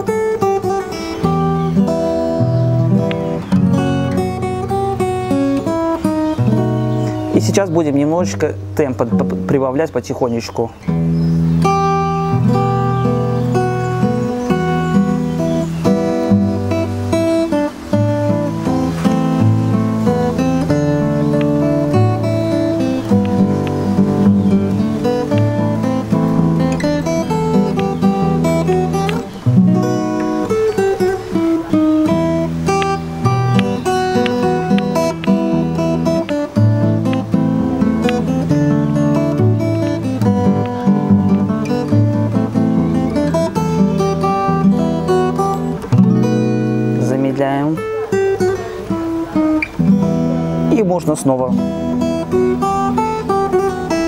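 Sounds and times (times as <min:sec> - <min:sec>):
fingerstyle acoustic guitar: 0:00.0 - 0:54.0.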